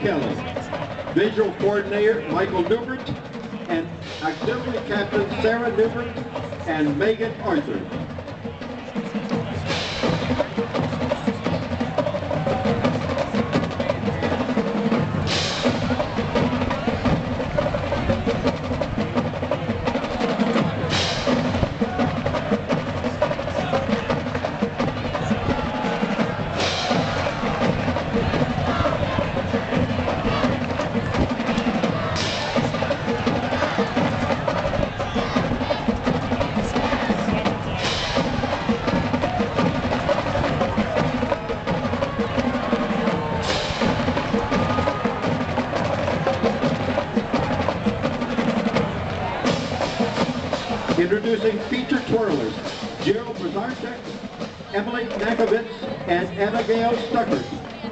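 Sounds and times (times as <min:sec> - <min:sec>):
bass drums: 0:00.0 - 0:57.9
snare drum rolls: 0:00.0 - 0:57.9.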